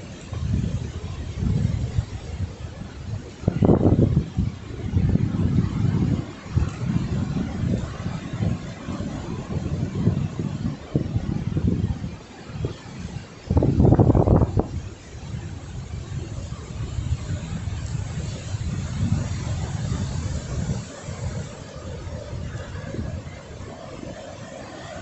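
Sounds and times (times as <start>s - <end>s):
wind buffeting microphone: 0.0s - 25.0s.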